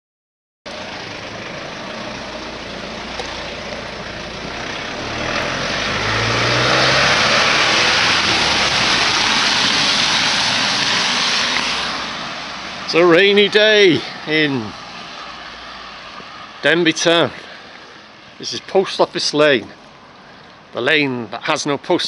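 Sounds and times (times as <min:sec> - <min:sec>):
low engine hum: 0:00.7 - 0:13.4
tyres hissing on wet road: 0:00.7 - 0:20.7.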